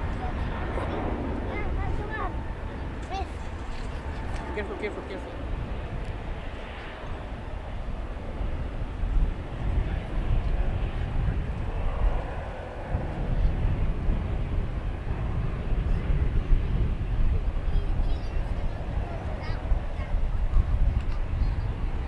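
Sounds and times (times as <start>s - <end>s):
jet engines deep rumble: 0.0s - 22.0s.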